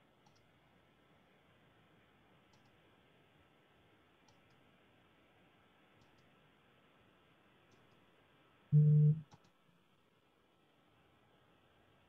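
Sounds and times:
computer mouse clicks: 0:00.2 - 0:00.5, 0:02.5 - 0:02.8, 0:04.2 - 0:04.6, 0:06.0 - 0:06.3, 0:07.7 - 0:08.0, 0:09.1 - 0:09.6.

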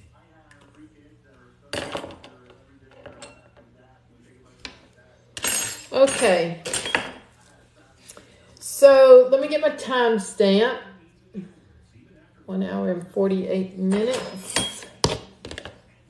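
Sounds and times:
metal utensils clinking on tray: 0:05.4 - 0:07.2.

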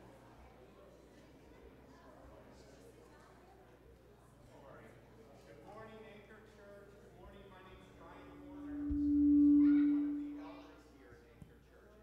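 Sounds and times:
low pure tone: 0:08.0 - 0:11.0.

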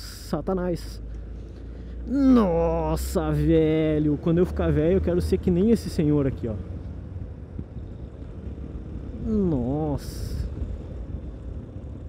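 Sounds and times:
motorcycle engine running: 0:01.1 - 0:12.0.

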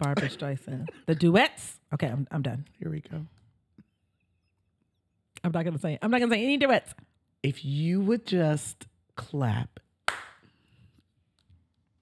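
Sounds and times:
sharp hand clap: 0:10.1 - 0:10.4.

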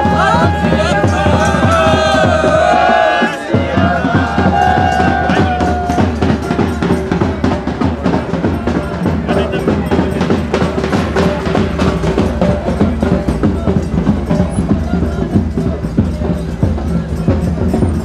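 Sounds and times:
band music: 0:00.0 - 0:18.0
drums keeping steady beat: 0:00.0 - 0:18.0.

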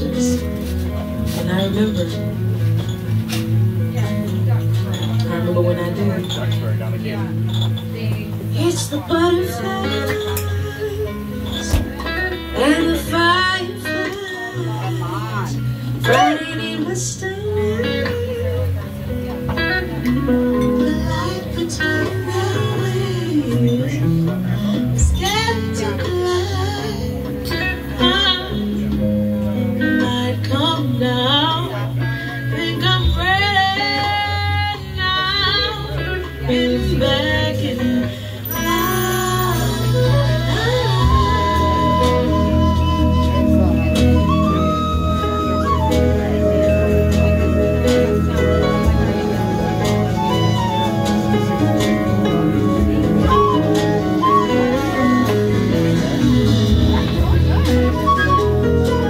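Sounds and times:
bass: 0:00.0 - 0:59.0
drums: 0:00.0 - 0:59.0
keyboards: 0:00.0 - 0:59.0
live band playing: 0:00.0 - 0:59.0
flute melody: 0:39.0 - 0:59.0.

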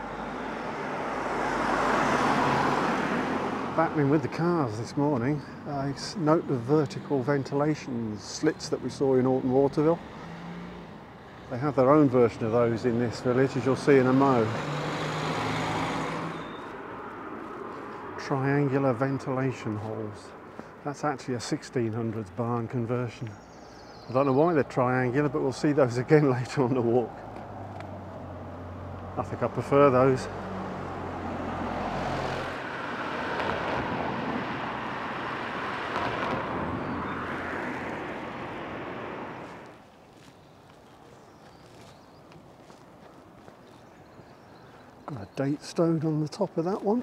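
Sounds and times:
car passing by: 0:00.0 - 0:04.3, 0:09.8 - 0:20.7, 0:27.0 - 0:39.8
tyre noise on road: 0:00.0 - 0:47.0
vehicle engine hum: 0:00.0 - 0:47.0.

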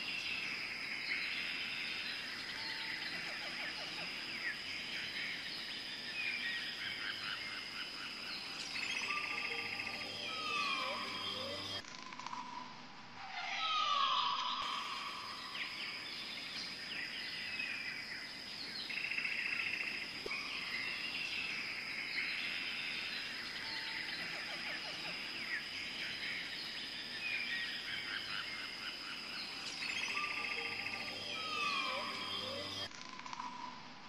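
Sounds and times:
birds calling and singing: 0:00.0 - 0:11.8, 0:13.5 - 0:33.2
high-pitched whine: 0:08.9 - 0:12.3, 0:29.8 - 0:33.8.

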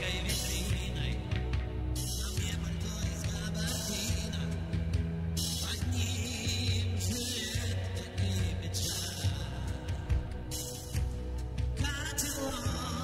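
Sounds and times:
pop-rock band playing live: 0:00.0 - 0:13.0
steady drum beat: 0:00.0 - 0:13.0
sustained bass line: 0:00.0 - 0:13.0.

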